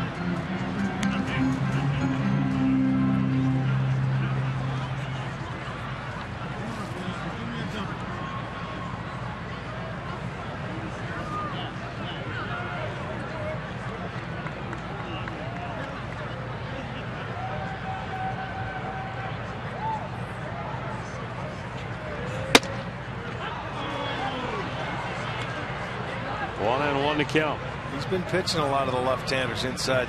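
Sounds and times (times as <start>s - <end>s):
crowd murmur: 0.0s - 30.0s
ball popping into mitt: 22.6s - 22.9s.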